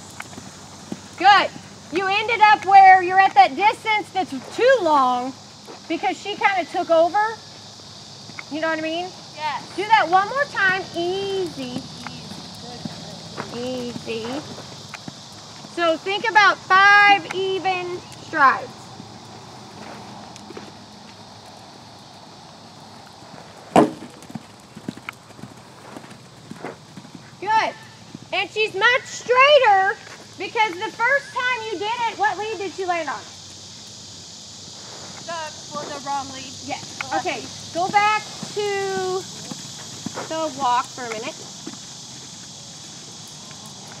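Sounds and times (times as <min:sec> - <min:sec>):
horse hoofbeats on sand: 0:00.0 - 0:33.1, 0:35.7 - 0:44.0
crickets chirping: 0:00.0 - 0:44.0
insect chorus: 0:00.0 - 0:44.0
sharp loud thump: 0:23.7 - 0:24.1.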